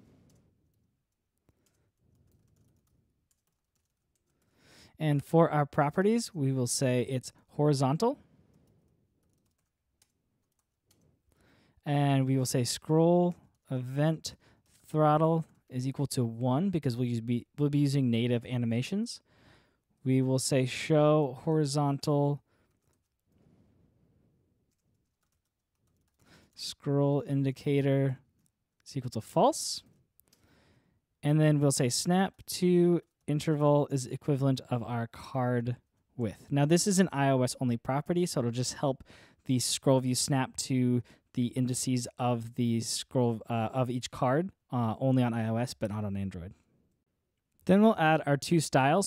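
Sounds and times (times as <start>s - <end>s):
faint typing on keyboard: 0.0s - 5.0s, 7.2s - 16.1s, 22.3s - 31.2s, 31.8s - 33.8s
computer keyboard keystrokes: 0.3s - 4.5s, 9.2s - 11.4s, 24.7s - 26.4s.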